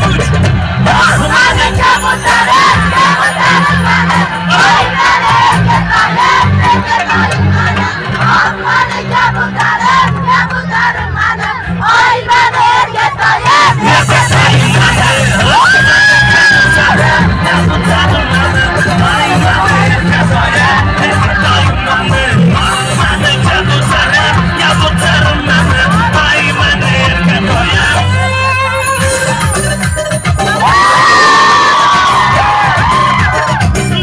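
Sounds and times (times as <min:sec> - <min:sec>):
crowd shouting and singing along: 0:00.0 - 0:34.0
live rock band playing loud: 0:00.0 - 0:34.0.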